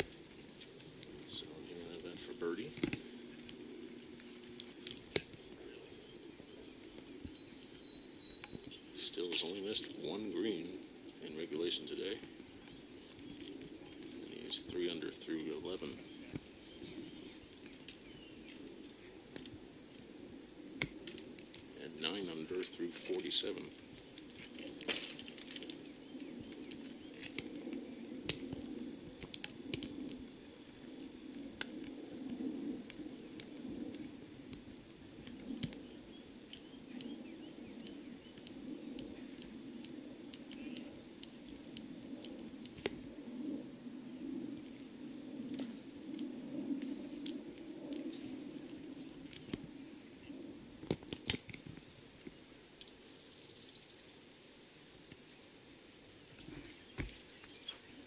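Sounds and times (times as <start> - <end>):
steady low hum: 0.0 - 58.0
bird chirp: 1.4 - 19.2, 29.2 - 31.3, 35.8 - 38.4, 40.5 - 41.0, 53.0 - 54.2, 56.7 - 58.0.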